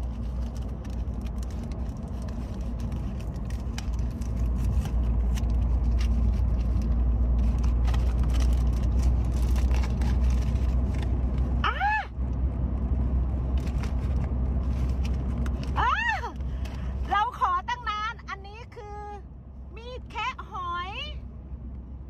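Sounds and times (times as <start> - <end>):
blister pack crinkling: 0.0 - 11.5
road and engine rumble in car: 0.0 - 22.0
woman exclaiming: 11.6 - 12.1, 15.8 - 16.4.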